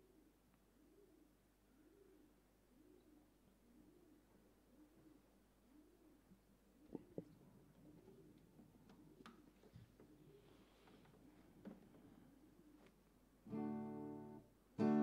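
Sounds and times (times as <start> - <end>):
pigeon cooing: 0.0 - 11.5, 12.2 - 13.6.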